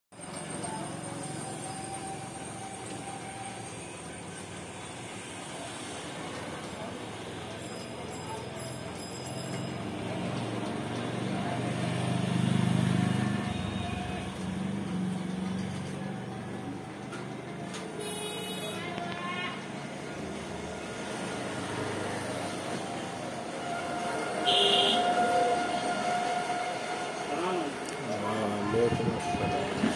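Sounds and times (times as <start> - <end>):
indistinct voices: 25.0 - 29.9.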